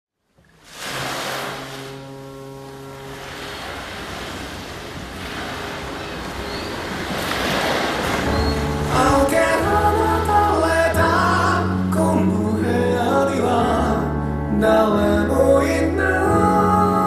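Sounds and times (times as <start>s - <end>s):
ocean waves washing in: 0.4s - 12.0s
low held tone: 1.4s - 7.0s.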